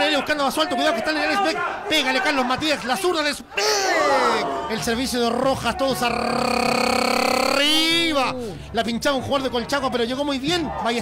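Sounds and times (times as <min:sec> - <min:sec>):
man holding a long vowel: 0:06.1 - 0:07.9.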